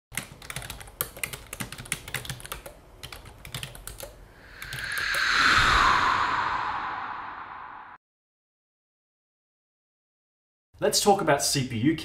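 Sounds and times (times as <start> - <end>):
laptop keyboard typing: 0.1 - 4.8
rush of noise: 4.4 - 8.0.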